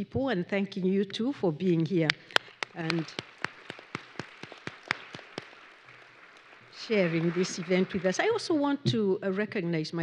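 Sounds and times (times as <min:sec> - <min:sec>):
sharp single hand claps: 0:02.1 - 0:05.6
light applause: 0:02.1 - 0:08.5.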